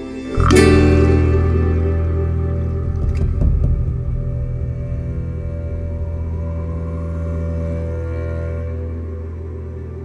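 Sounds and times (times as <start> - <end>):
slow ambient music: 0.0 - 10.0
low steady drone: 3.8 - 10.0.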